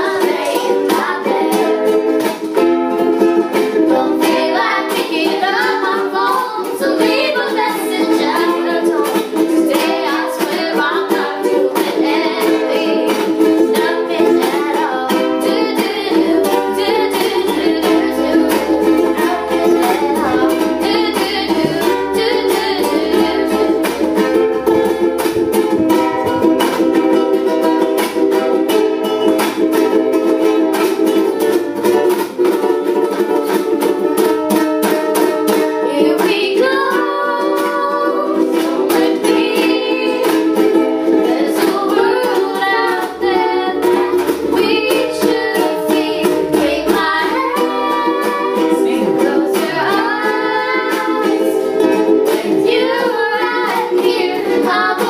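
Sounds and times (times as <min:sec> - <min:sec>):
girls singing: 0:00.0 - 0:32.0, 0:32.6 - 0:55.0
ukuleles strummed: 0:00.0 - 0:55.0.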